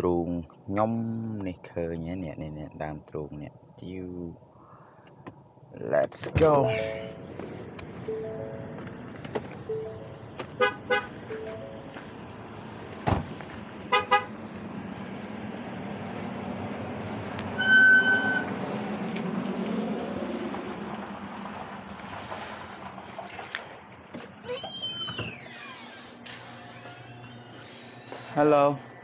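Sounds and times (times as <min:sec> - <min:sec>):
car horn toots: 0:10.6 - 0:11.6, 0:13.9 - 0:14.4, 0:17.5 - 0:18.5
creaking door swinging open: 0:24.1 - 0:28.4.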